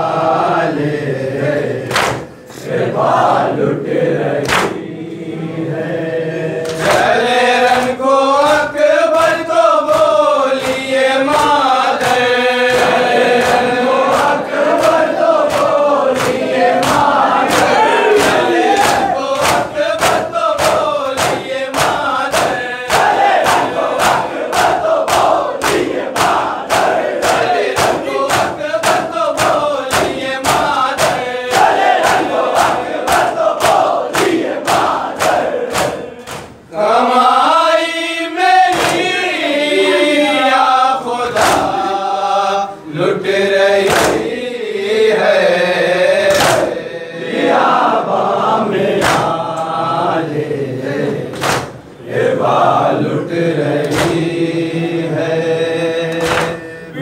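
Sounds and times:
men chanting a lament: 0.0 - 57.0
hands striking chests: 51.4 - 51.8.

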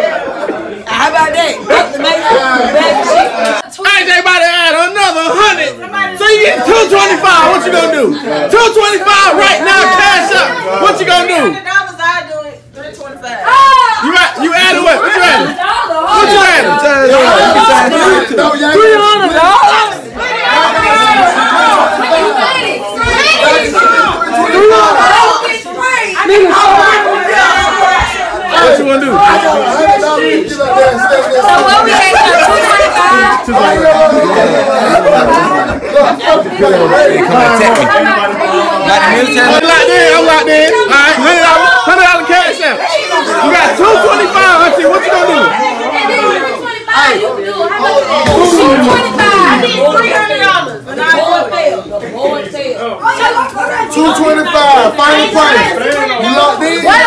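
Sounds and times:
crowd talking and calling out: 0.0 - 57.0.

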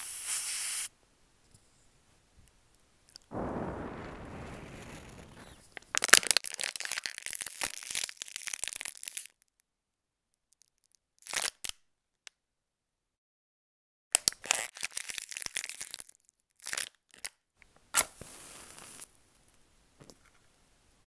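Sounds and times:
rush of noise: 3.3 - 5.7
material crinkling and crunching: 3.9 - 9.6.

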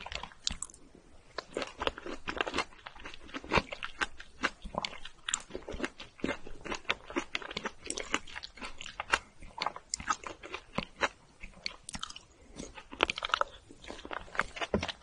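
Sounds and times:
wet chewing clicks and smacks: 0.0 - 0.8, 1.4 - 15.0.

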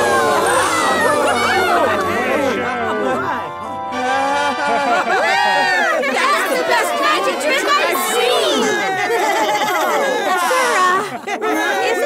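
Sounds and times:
cartoon voices chattering: 0.0 - 12.0.

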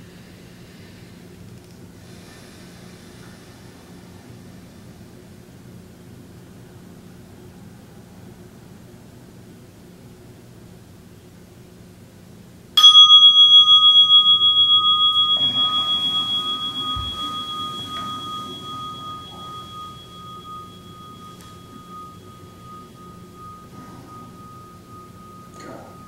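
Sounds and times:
meditation bell ringing: 12.8 - 26.0.

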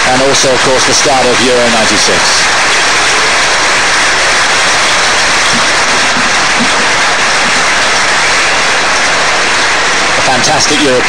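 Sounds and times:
stadium crowd applauding: 0.0 - 11.0.

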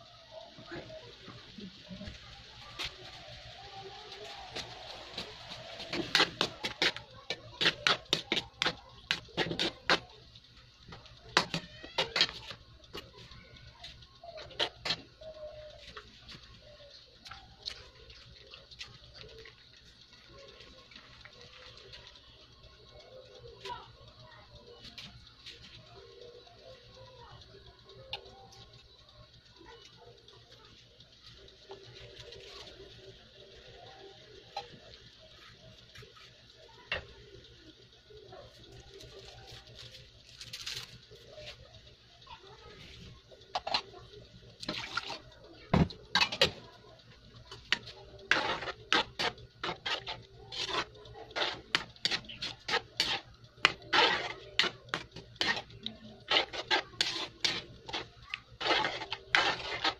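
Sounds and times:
sauce bubbling in a wok: 0.0 - 59.9
ladle clinking and scraping wok: 5.0 - 10.0, 43.5 - 43.9, 45.9 - 46.7, 47.5 - 59.9.

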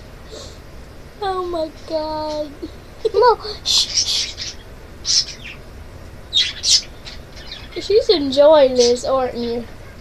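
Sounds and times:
breathy stifled giggling: 2.6 - 3.8.

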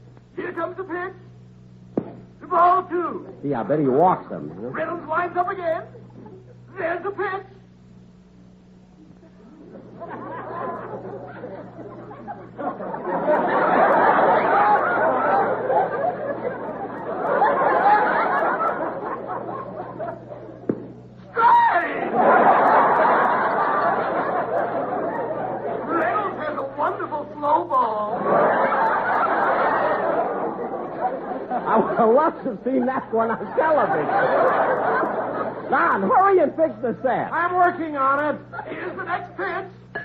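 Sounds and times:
studio audience laughing: 9.0 - 20.8, 21.8 - 36.9.

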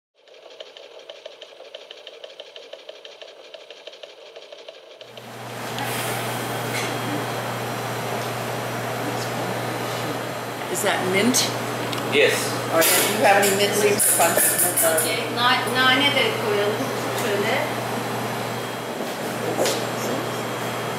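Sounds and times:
fast even ticking: 0.2 - 5.2
room noise: 0.2 - 20.9
steady low hum: 0.4 - 20.9.

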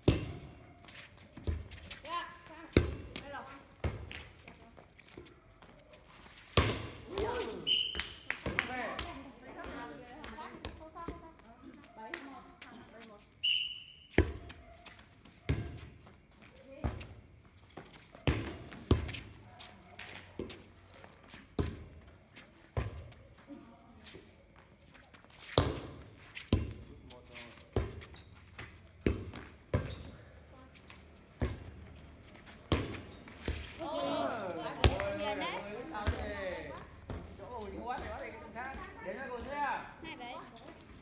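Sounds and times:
hand slapping volleyball: 6.6 - 9.1, 34.5 - 36.3.

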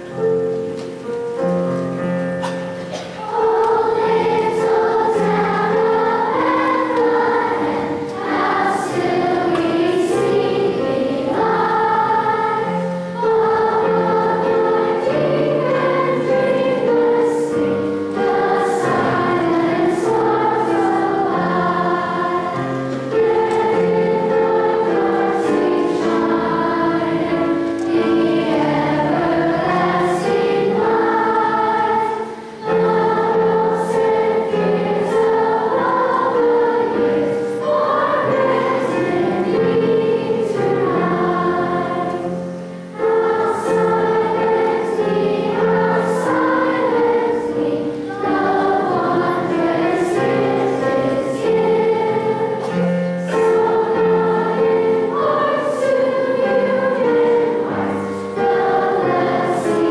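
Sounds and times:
children's choir singing: 0.0 - 59.9.

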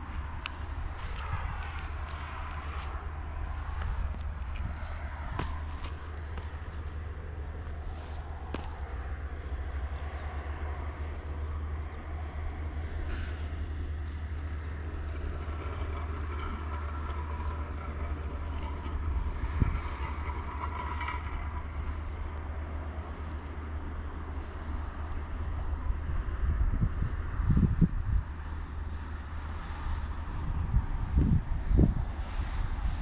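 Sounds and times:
low rumble: 0.0 - 22.5
distant traffic: 0.0 - 33.0.

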